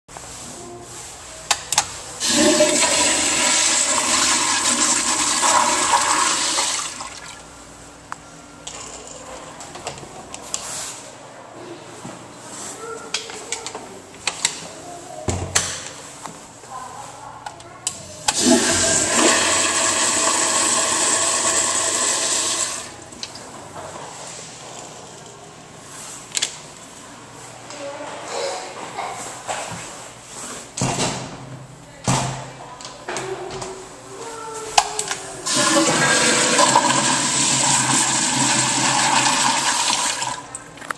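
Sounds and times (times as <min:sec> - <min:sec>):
toilet flushing: 0:02.2 - 0:07.5, 0:18.3 - 0:23.2, 0:35.4 - 0:40.7.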